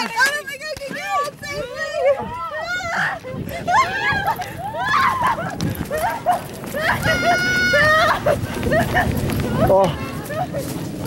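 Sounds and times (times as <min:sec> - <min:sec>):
people crying out and laughing: 0:01.5 - 0:10.7
footsteps on grass: 0:05.2 - 0:11.0.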